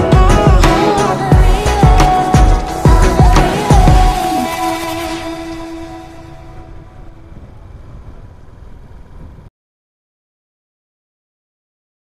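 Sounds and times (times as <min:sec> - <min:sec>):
motorcycle engine: 0:00.0 - 0:09.5
wind buffeting: 0:00.6 - 0:09.5.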